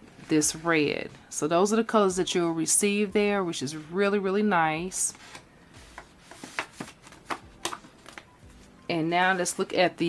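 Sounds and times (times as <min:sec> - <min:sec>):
cardstock rustling: 0:05.1 - 0:09.5.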